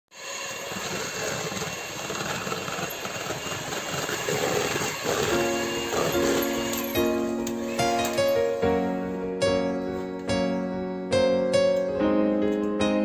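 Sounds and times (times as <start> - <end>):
electric hand mixer whisking: 0.1 - 8.8
background music: 5.3 - 13.0.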